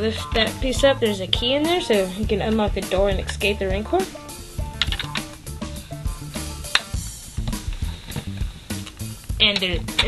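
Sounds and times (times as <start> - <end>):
music with drum-kit beat: 0.0 - 10.0.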